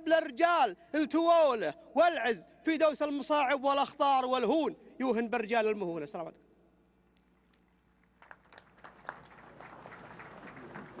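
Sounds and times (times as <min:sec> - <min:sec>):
audience applause: 0:08.2 - 0:11.0.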